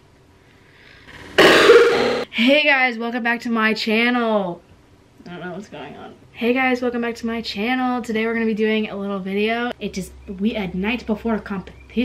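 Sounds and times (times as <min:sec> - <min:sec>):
person burping or coughing: 0:01.4 - 0:02.2.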